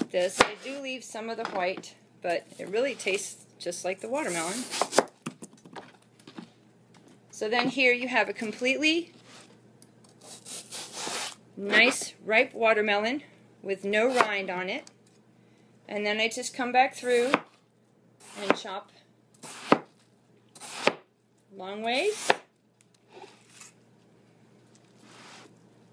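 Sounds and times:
knife chopping watermelon: 0.0 - 0.8, 4.6 - 5.1, 18.2 - 18.7, 19.4 - 20.0, 20.6 - 21.0.

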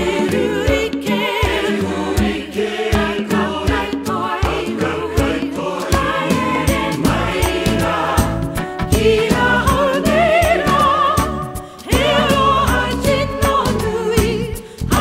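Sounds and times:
choir singing: 0.0 - 15.0
soprano voice with wide vibrato: 3.3 - 15.0.

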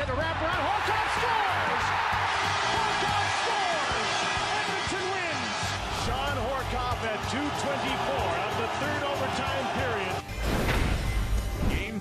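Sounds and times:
crowd roaring: 0.3 - 10.2.

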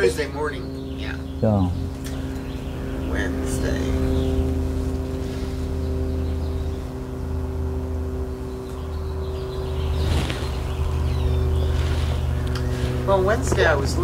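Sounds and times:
machine hum: 0.0 - 14.0.

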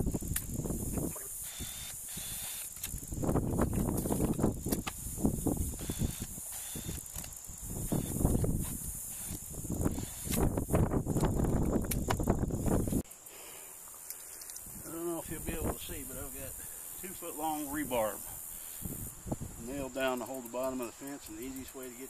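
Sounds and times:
grass rustling: 0.0 - 22.0.

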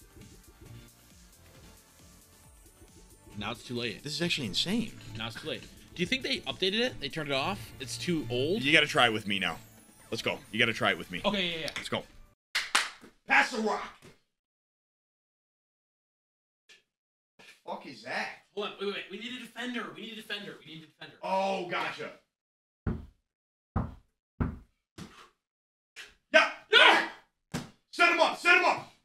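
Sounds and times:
man shouting: 26.3 - 27.2, 28.0 - 28.9
person shouting: 26.4 - 27.2.

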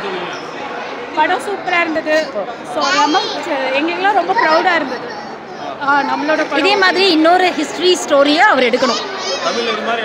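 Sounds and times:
women talking: 1.2 - 5.0, 5.8 - 9.0.

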